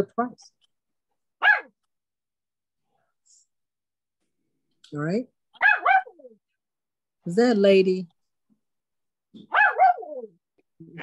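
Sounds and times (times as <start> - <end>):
dog barking: 1.4 - 1.8, 5.6 - 6.3, 9.5 - 10.3.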